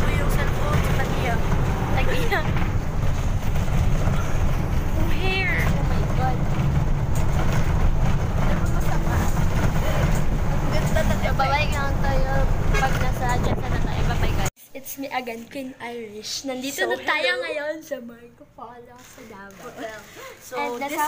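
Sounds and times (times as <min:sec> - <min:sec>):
people talking: 0:00.0 - 0:02.6, 0:04.9 - 0:06.6, 0:08.4 - 0:21.0
bus engine and road rumble: 0:00.0 - 0:14.6.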